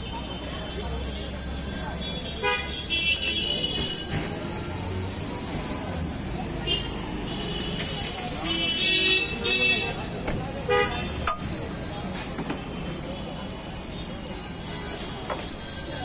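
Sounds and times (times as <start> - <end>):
traffic noise: 0.0 - 16.0
vehicle horns honking: 2.2 - 4.3, 6.6 - 10.0, 10.7 - 11.5.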